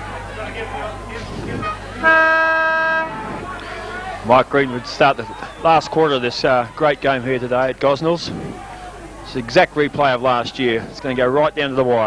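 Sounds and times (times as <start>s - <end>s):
siren steady tone: 1.6s - 3.4s.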